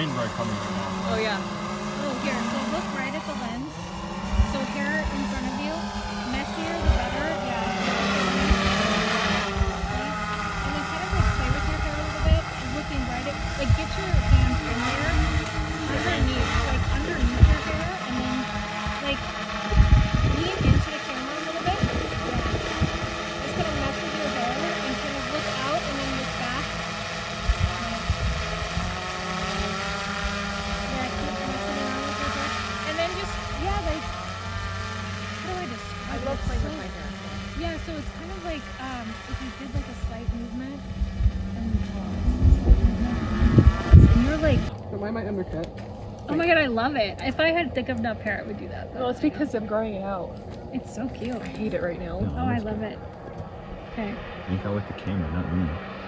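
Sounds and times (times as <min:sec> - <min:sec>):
indistinct voices: 0:00.0 - 0:26.8, 0:30.6 - 0:34.6, 0:35.2 - 0:56.0
faint steady hum: 0:00.0 - 0:56.0
wind buffeting microphone: 0:00.6 - 0:55.8.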